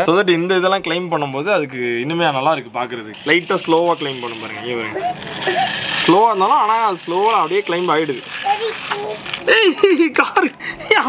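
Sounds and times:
steady whirring hiss: 2.3 - 11.0.

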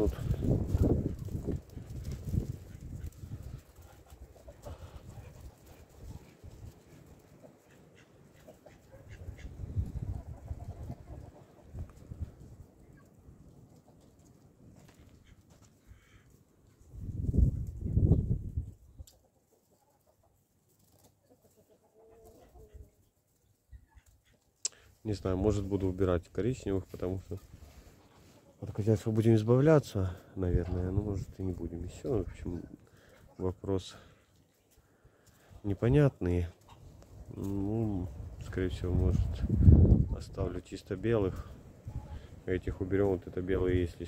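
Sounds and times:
chickens clucking: 0.0 - 43.9.

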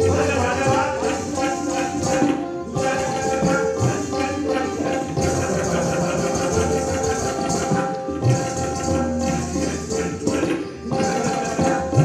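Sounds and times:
bamboo flute melody: 0.0 - 12.0
tabla drumming: 0.0 - 12.0
violin: 0.0 - 12.0.

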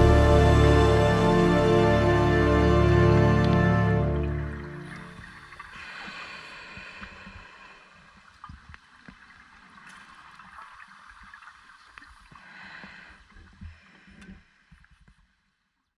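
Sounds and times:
low underwater rumble: 0.0 - 11.4
gurgling regulator bubbles: 3.5 - 6.2.

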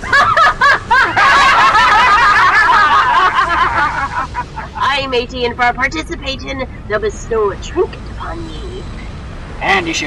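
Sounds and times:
people laughing loudly: 0.0 - 4.9.

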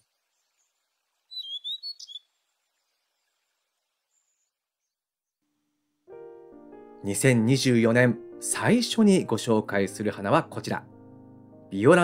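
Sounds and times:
small bird chirping: 0.0 - 5.4.

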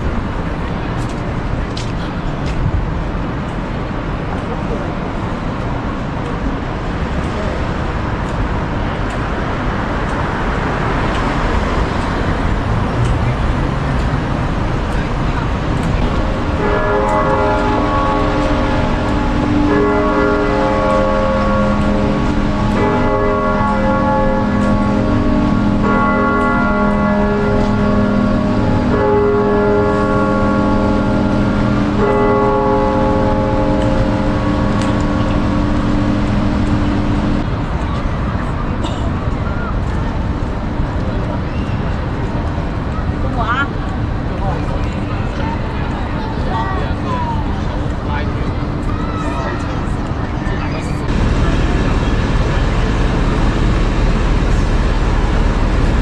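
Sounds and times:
street traffic: 0.0 - 56.0
clock-tower bell striking: 1.7 - 37.7, 49.4 - 56.0.

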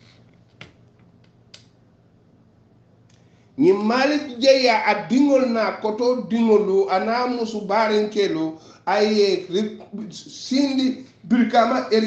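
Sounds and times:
faint low hum: 0.0 - 12.0
soft clicks: 0.2 - 1.8.

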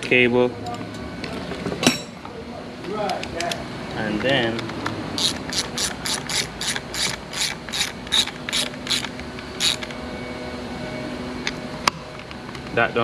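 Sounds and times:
ratchet wrench clicking: 5.2 - 10.0.

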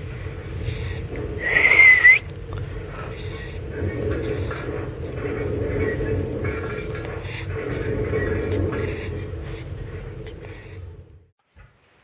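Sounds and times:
low steady rumble: 0.0 - 11.3.

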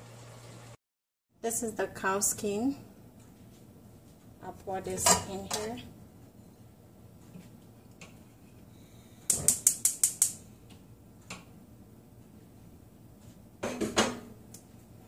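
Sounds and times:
kitchenware clinking: 4.8 - 5.8.

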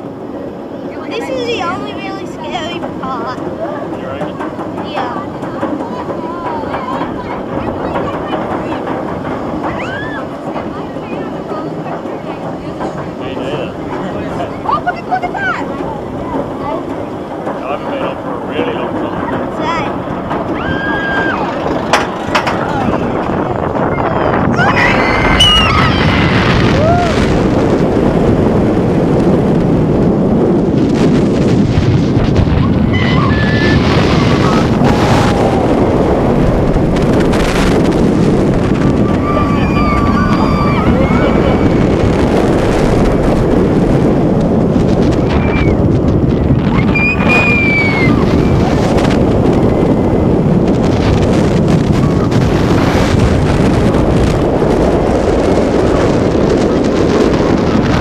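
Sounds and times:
roller coaster train rumbling: 0.0 - 58.0
wind rushing on microphone: 0.0 - 58.0
riders shouting and screaming: 20.5 - 27.4, 32.6 - 36.1, 38.7 - 42.4, 46.7 - 49.7.

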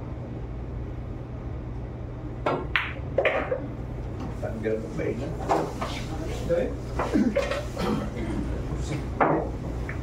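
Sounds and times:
people talking: 4.4 - 9.1.

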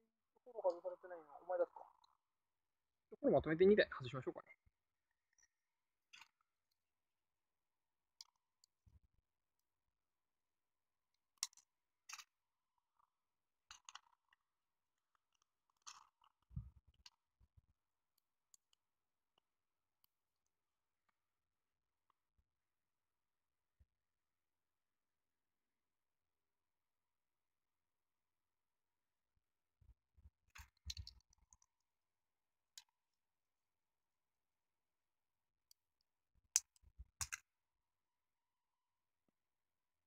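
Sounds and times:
clicks of small plastic parts: 5.3 - 6.8, 11.3 - 12.4, 13.6 - 14.4, 15.2 - 17.3, 30.5 - 31.8, 32.7 - 33.0, 35.6 - 37.5.

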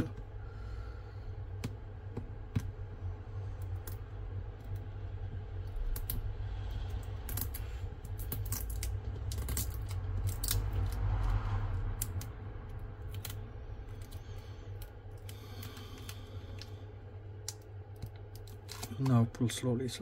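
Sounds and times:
steady low hum: 0.0 - 20.0.

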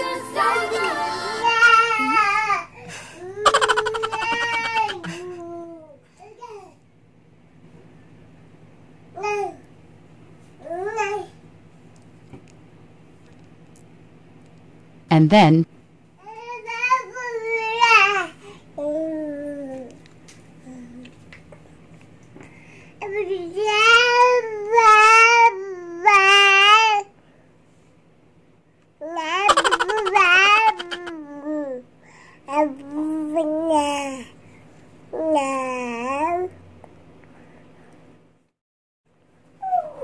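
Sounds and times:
baby vocalizing: 3.5 - 5.2, 29.4 - 31.3.

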